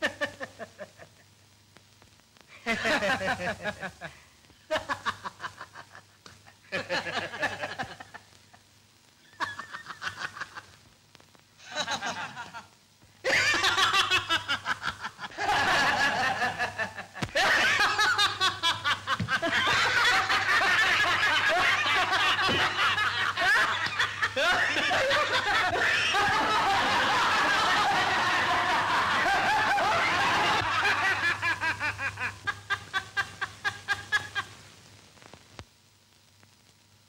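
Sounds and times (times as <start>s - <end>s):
men laughing loudly: 2.6s - 6.1s, 6.7s - 8.3s, 9.3s - 10.7s, 11.6s - 34.5s.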